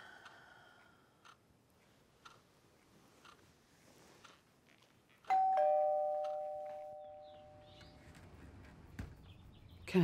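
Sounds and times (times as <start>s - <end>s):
two-tone doorbell chime: 5.3s - 7.7s.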